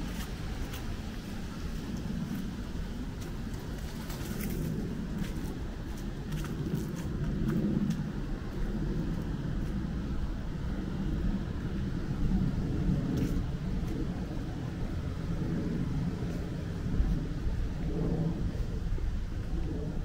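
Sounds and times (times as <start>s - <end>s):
low outdoor rumble: 0.0s - 20.0s.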